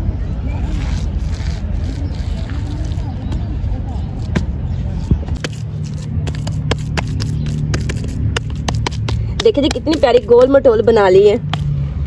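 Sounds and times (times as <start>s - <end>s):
hands patting wet dung: 5.3s - 10.6s.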